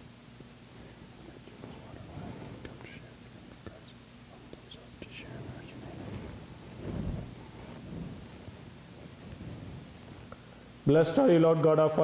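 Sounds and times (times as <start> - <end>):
man whispering prayer: 0.8 - 6.6.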